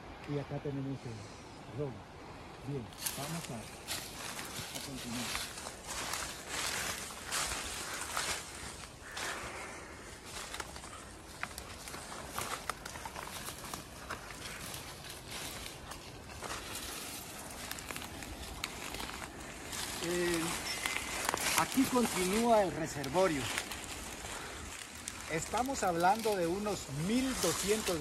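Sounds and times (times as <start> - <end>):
undergrowth rustling against legs: 2.7 - 28.0
footsteps crunching dry leaves: 3.0 - 28.0.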